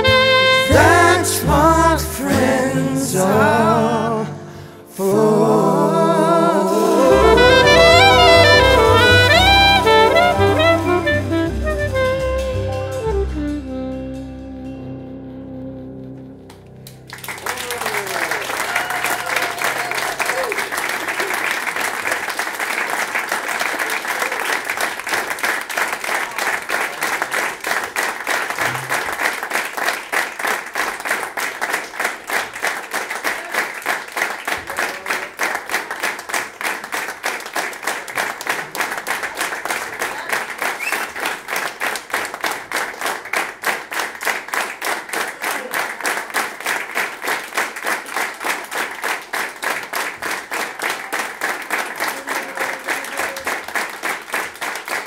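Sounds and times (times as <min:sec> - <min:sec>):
audience applauding: 0:06.9 - 0:13.2, 0:16.8 - 0:55.0
rhythmic clapping in unison: 0:17.1 - 0:55.0.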